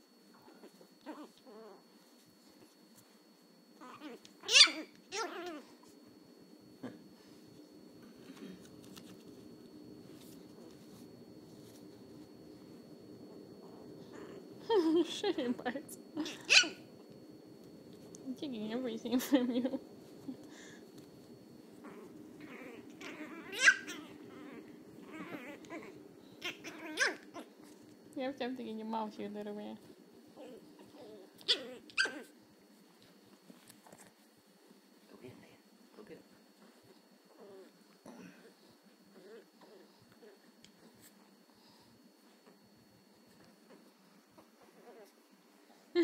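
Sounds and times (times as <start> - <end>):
puppy yipping and barking: 4.4 - 5.6, 16.5 - 16.8, 23.0 - 24.2, 26.4 - 27.5, 31.4 - 32.3.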